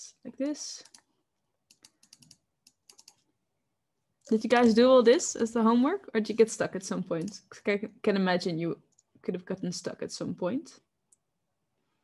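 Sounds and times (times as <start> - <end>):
keyboard typing: 0.5 - 3.3.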